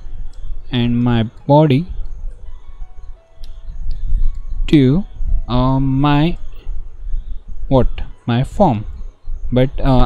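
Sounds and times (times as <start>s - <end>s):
soft background music: 0.0s - 10.0s
steady low hum: 0.0s - 10.0s
keyboard typing clicks: 0.3s - 2.6s.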